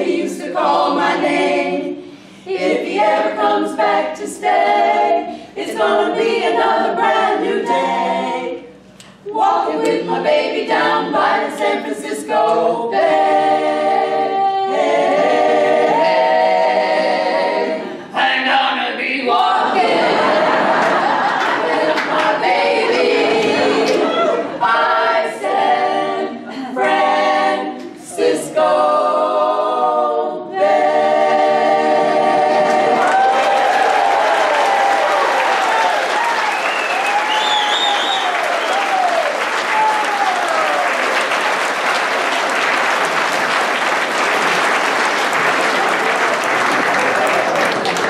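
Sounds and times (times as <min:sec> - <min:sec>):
women singing in harmony: 0:00.0 - 0:18.2, 0:19.0 - 0:35.1
audience applause: 0:32.7 - 0:48.0
cheers and whoops: 0:33.0 - 0:41.1.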